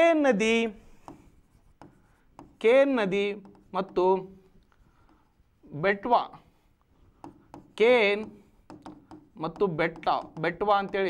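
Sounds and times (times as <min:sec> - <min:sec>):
pen writing on a board: 0:00.8 - 0:05.5, 0:07.0 - 0:11.0
man speaking: 0:05.7 - 0:06.5, 0:07.8 - 0:08.4, 0:09.4 - 0:11.0.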